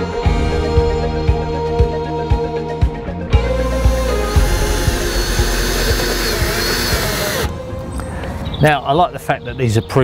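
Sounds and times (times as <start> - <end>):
background music: 0.0 - 10.0
cordless drill driving screw: 3.6 - 7.5.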